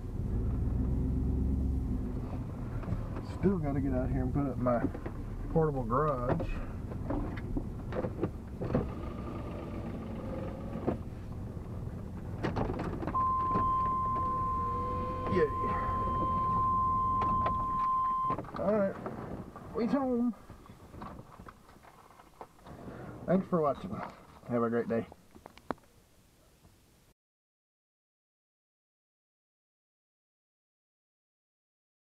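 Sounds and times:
truck engine idling: 0:02.5 - 0:18.2
steady electronic tone: 0:13.2 - 0:18.3.

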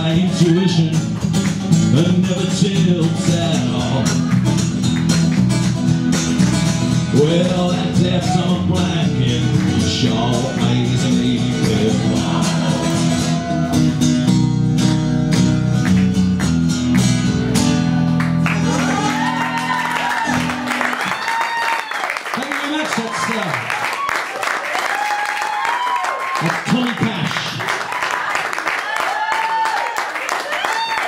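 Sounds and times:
acoustic guitar strummed: 0:00.0 - 0:21.1
audience calling: 0:18.4 - 0:24.2.

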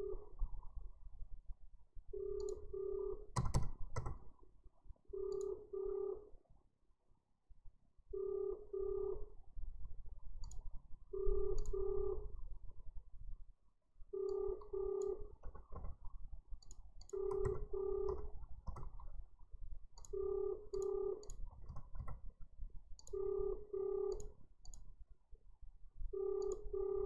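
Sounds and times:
telephone ringback tone: 0:02.2 - 0:03.3, 0:05.2 - 0:06.3, 0:08.2 - 0:09.3, 0:11.2 - 0:12.3, 0:14.2 - 0:15.3, 0:17.2 - 0:18.3, 0:20.1 - 0:21.3, 0:23.1 - 0:24.3, 0:26.2 - 0:27.0.

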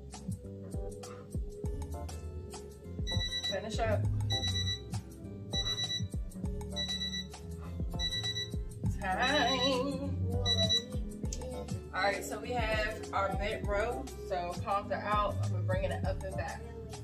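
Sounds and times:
music with steady beat: 0:00.0 - 0:17.0
timer alarm beeping: 0:03.0 - 0:11.0.

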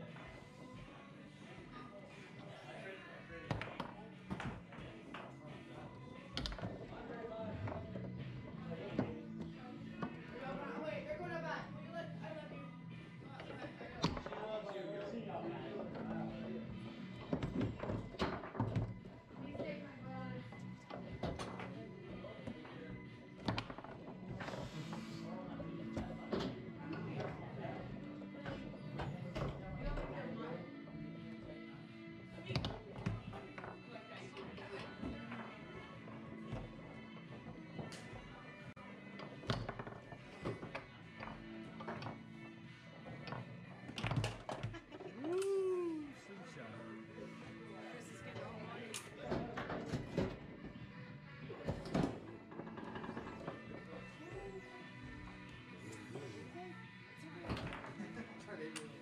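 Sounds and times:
background music: 0:00.0 - 0:59.0
indistinct voices: 0:44.9 - 0:46.3.

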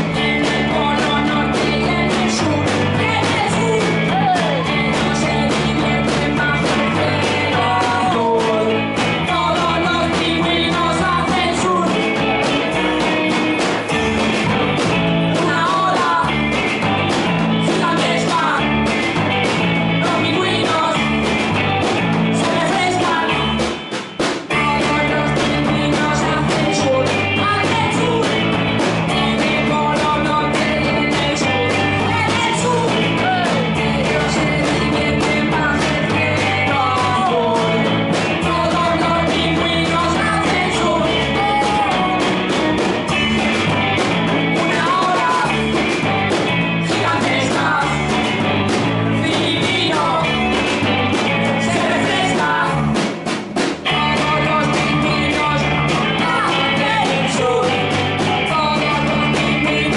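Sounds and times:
electric guitars: 0:00.0 - 0:59.9
garage rock band playing: 0:00.0 - 0:59.9
person singing: 0:00.0 - 0:59.9
snare and floor tom drums: 0:00.0 - 0:59.9.

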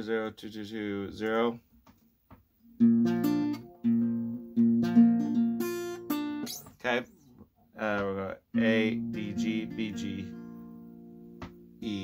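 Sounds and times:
acoustic guitar arpeggio: 0:02.8 - 0:07.4, 0:08.5 - 0:11.7.

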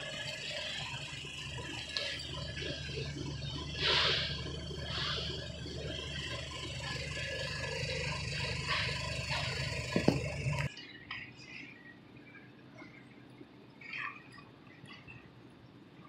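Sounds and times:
supermarket background hum: 0:00.0 - 0:16.0.

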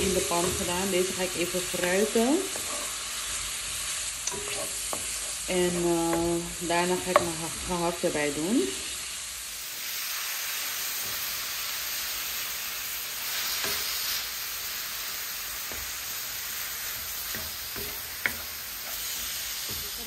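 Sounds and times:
meat sizzling in a frying pan: 0:00.0 - 0:20.0
spoon knocking on pan: 0:07.0 - 0:07.4, 0:17.3 - 0:20.0.

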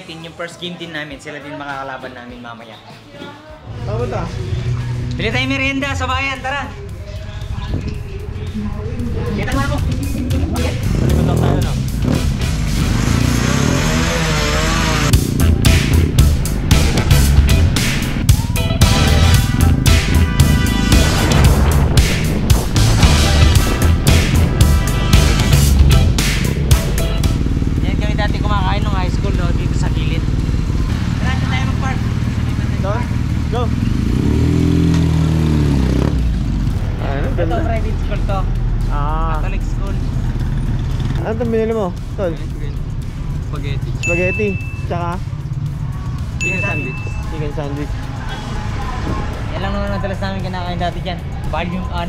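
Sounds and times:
background music with steady beat: 0:00.0 - 0:34.8, 0:35.6 - 0:52.0
motorcycle engine revving: 0:03.7 - 0:44.2.

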